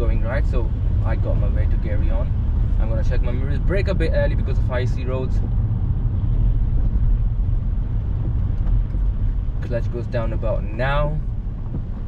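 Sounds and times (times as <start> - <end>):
car driving on wet road: 0.0 - 12.0.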